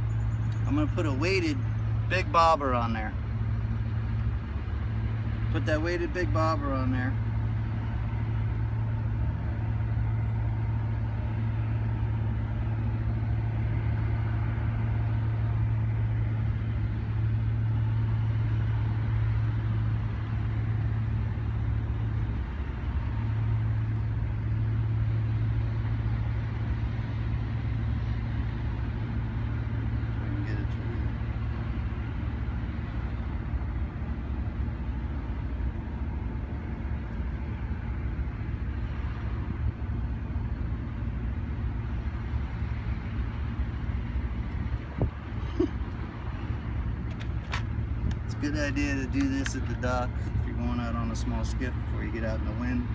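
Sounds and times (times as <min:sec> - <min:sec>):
low droning hum: 0:00.0 - 0:52.9.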